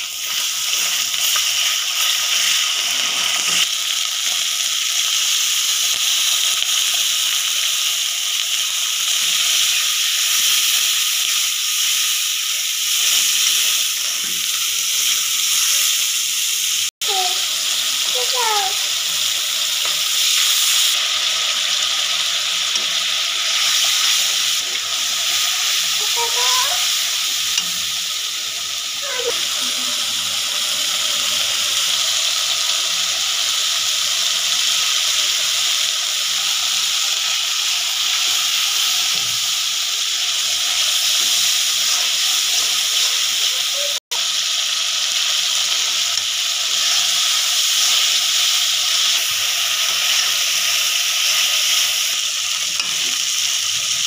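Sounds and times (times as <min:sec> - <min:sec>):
onion paste sizzling in oil: 0:00.0 - 0:54.0.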